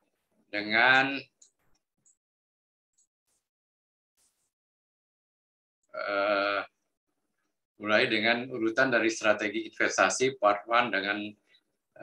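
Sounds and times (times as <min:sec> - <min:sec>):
man speaking: 0:00.5 - 0:01.4, 0:07.8 - 0:11.4.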